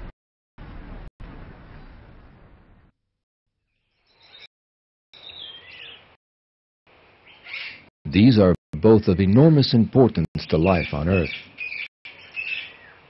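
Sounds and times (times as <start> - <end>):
birds chirping and whistling: 3.8 - 4.5, 5.2 - 6.1, 7.2 - 7.9, 10.5 - 13.0.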